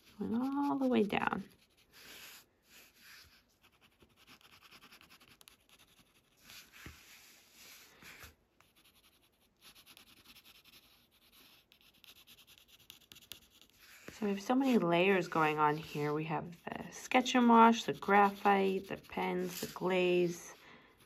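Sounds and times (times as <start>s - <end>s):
pencil scratching on paper: 0.0s - 20.6s.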